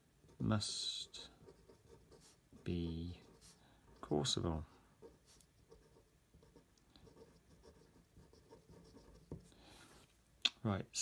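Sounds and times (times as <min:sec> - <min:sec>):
pen scratching on paper: 0:01.4 - 0:02.4, 0:03.1 - 0:04.2, 0:05.0 - 0:09.9.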